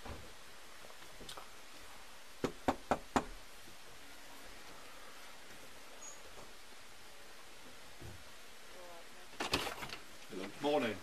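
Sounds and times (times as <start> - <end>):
knocks on a door: 2.4 - 3.3.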